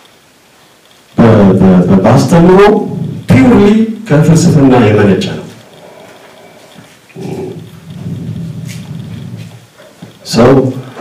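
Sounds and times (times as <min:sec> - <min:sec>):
man speaking through microphone: 0:01.2 - 0:05.6, 0:10.2 - 0:11.0.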